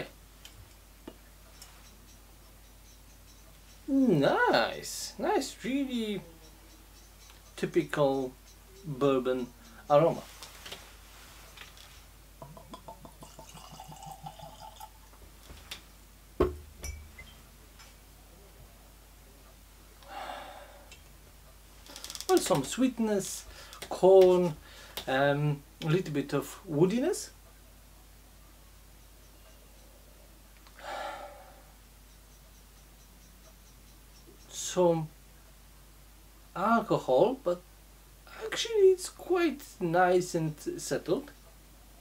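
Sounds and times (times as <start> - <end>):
knocks: 16.4 - 17.0
person breathing in: 20.0 - 20.9, 30.8 - 31.7.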